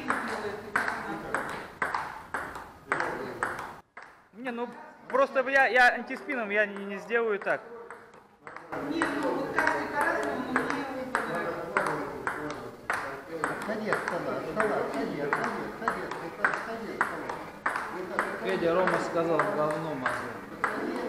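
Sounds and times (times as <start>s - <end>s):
table tennis ball clicks: 0.0s - 4.3s, 5.1s - 21.0s.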